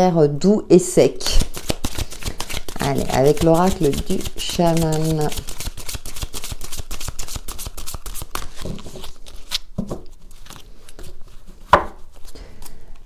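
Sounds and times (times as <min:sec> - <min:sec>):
cards being shuffled: 0:01.2 - 0:13.0.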